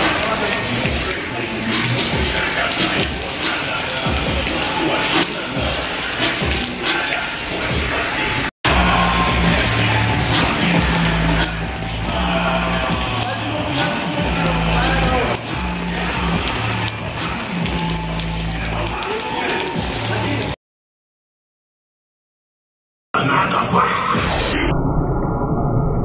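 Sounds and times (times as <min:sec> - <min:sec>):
rap music with heavy bass: 0:00.0 - 0:20.6.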